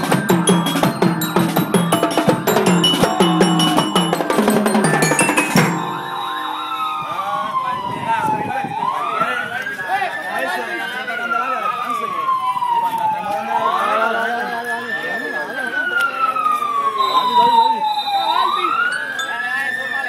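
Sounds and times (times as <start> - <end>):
crowd voices: 0.0 - 20.0
wailing siren: 0.0 - 20.0.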